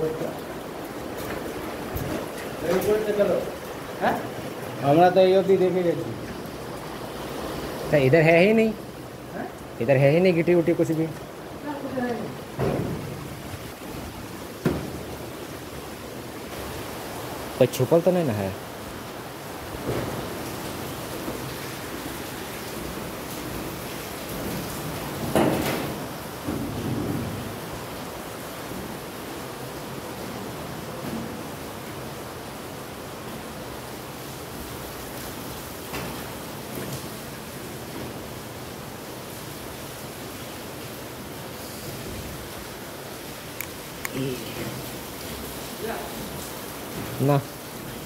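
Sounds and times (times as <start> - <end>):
steady background hiss: 0.0 - 48.0
rustles and thumps: 1.2 - 3.0, 12.6 - 15.2.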